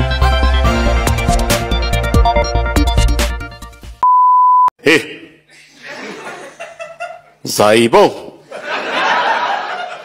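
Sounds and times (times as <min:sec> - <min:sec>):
electronic music: 0:00.0 - 0:03.9
loud pure beep: 0:04.0 - 0:04.7.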